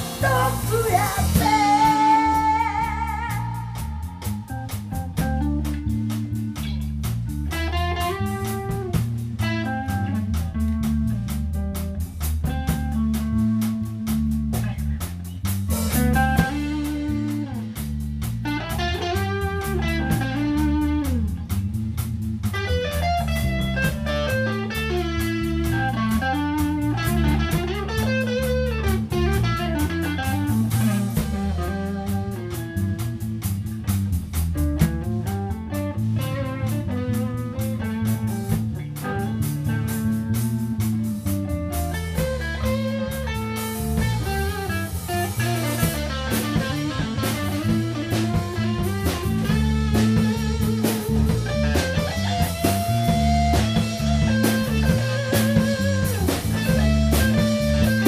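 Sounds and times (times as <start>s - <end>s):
bass guitar: 0.0s - 58.0s
drum kit: 0.0s - 58.0s
electric guitar lead line: 0.0s - 58.0s.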